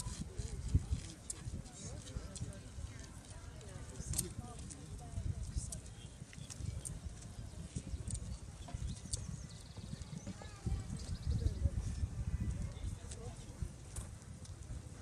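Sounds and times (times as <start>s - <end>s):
faint voices: 0.0s - 15.0s
low uneven background noise: 0.0s - 15.0s.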